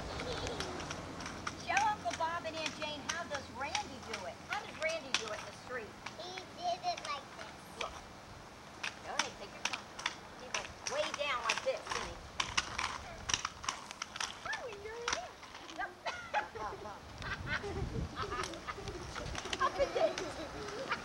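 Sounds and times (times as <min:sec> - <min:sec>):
children's voices babbling: 0:00.0 - 0:01.0, 0:14.4 - 0:21.0
sharp clicks and clatter: 0:00.0 - 0:08.0, 0:08.8 - 0:15.8, 0:18.4 - 0:21.0
woman calling: 0:01.6 - 0:06.0, 0:14.4 - 0:17.0.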